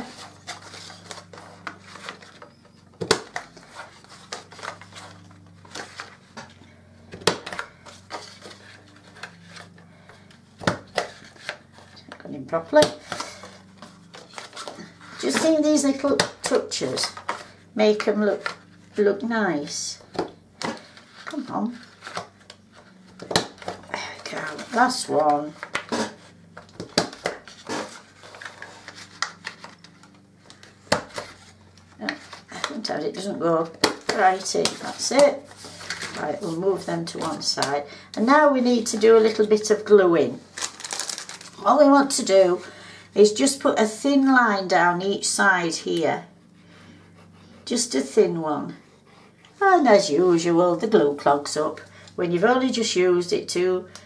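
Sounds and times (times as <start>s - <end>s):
paper handling sounds: 0.0s - 19.0s, 20.1s - 37.8s, 38.6s - 42.4s.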